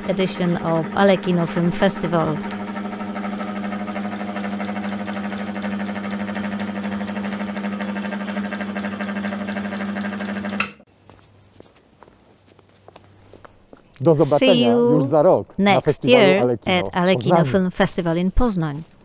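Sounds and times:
film projector running: 0.0 - 10.8.

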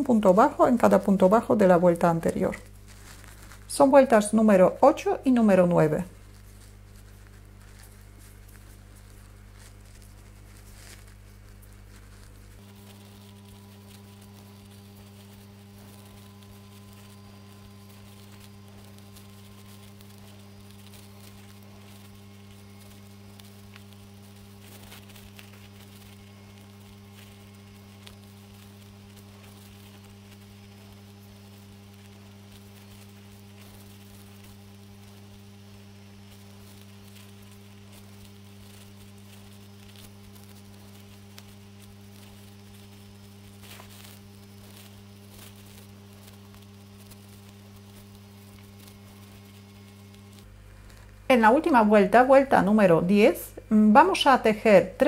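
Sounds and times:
low electrical mains hum: 0.0 - 55.0.

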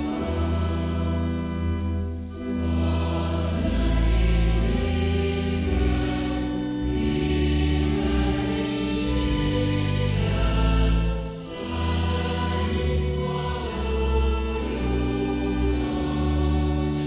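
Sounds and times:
congregation singing a hymn: 0.0 - 17.0
organ accompaniment: 0.0 - 17.0.

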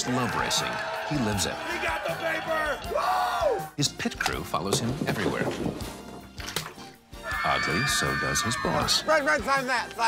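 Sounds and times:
fans screaming excitedly: 0.0 - 3.7, 7.2 - 9.1.

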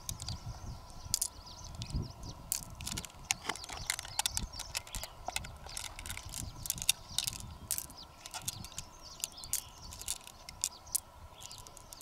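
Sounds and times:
small pearls clicking together: 1.1 - 12.0.

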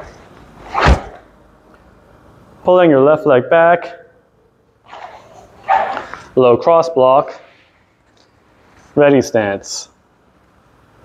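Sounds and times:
cotton uniform rustling and swishing: 0.6 - 1.3.

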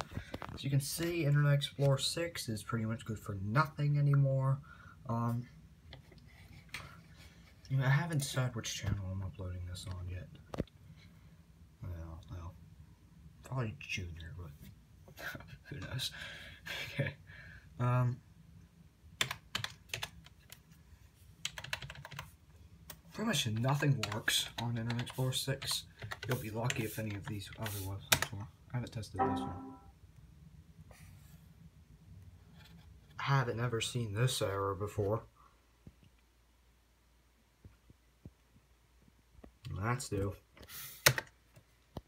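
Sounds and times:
computer keyboard typing: 19.2 - 20.5, 21.4 - 22.3, 23.6 - 27.3
low steady hum: 29.0 - 30.6.

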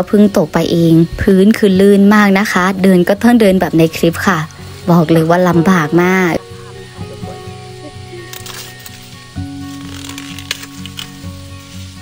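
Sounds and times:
background music: 0.0 - 12.0
corn leaves rustling: 6.6 - 12.0.

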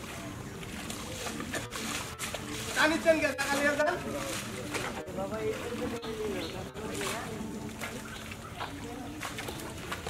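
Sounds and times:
mud and water sloshing: 0.0 - 10.0.

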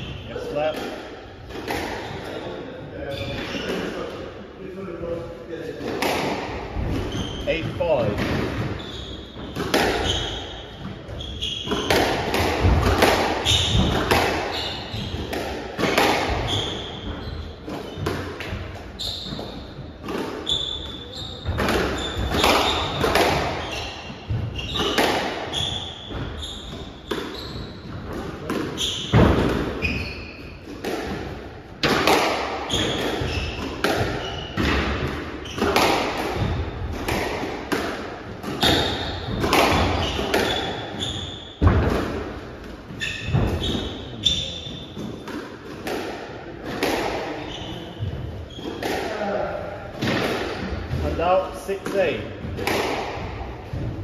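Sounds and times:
shoes squeaking on wooden floor: 6.8 - 30.8, 32.6 - 37.2, 38.4 - 45.4, 47.3 - 49.4
squash ball knocks: 11.7 - 17.2, 30.8 - 40.6, 51.9 - 54.0.

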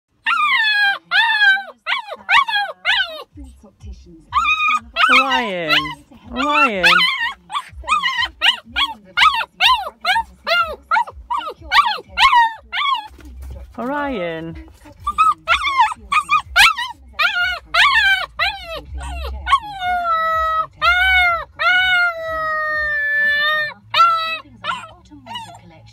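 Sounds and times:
puppy howling: 0.2 - 3.3, 4.3 - 13.2, 15.0 - 25.6.

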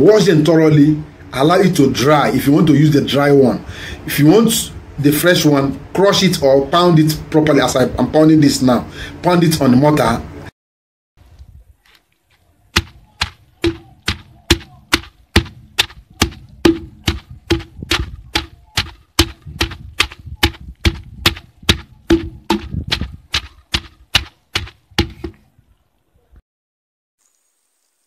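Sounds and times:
wooden pestle pounding in mortar: 12.7 - 25.4.

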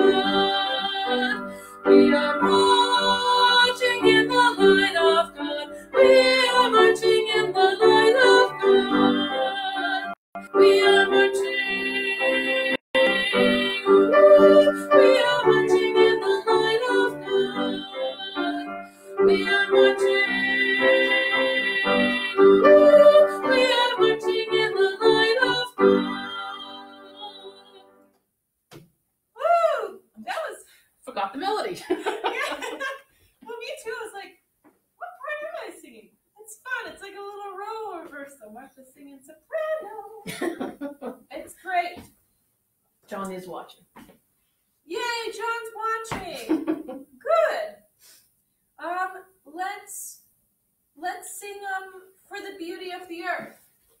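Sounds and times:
grand piano accompaniment: 0.0 - 27.2
woman singing a hymn: 0.0 - 27.9.

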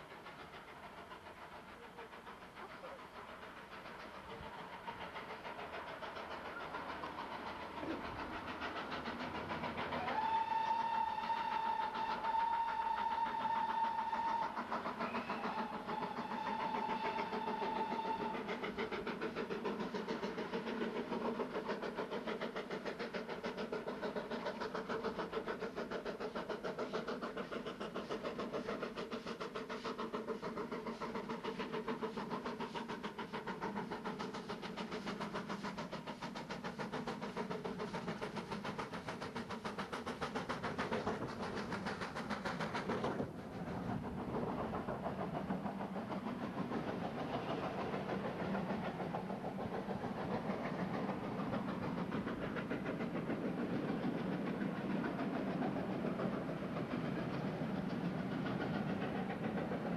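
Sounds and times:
steam locomotive exhaust beat: 0.0 - 59.9
steam locomotive whistle: 10.0 - 18.4.

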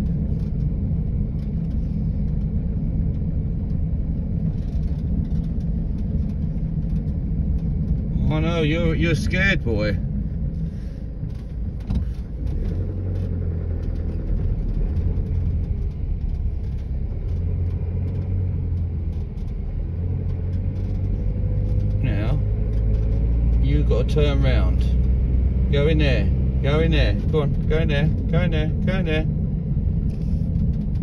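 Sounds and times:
car engine and tyre rumble: 0.0 - 31.0.

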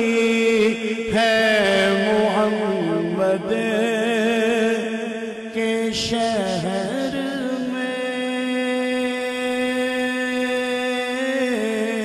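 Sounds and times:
man chanting one long note: 0.0 - 12.0.

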